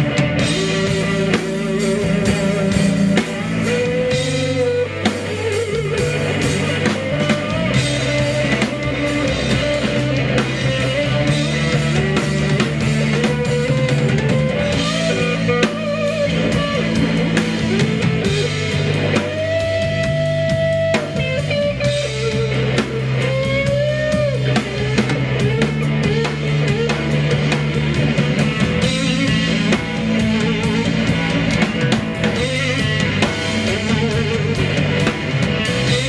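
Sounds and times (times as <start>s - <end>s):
drum kit: 0.0s - 36.0s
electric bass: 0.0s - 36.0s
electric guitar lead: 0.0s - 36.0s.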